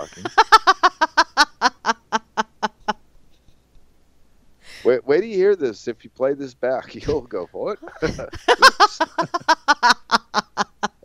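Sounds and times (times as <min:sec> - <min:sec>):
person laughing hard: 0:00.0 - 0:03.0, 0:07.8 - 0:11.0.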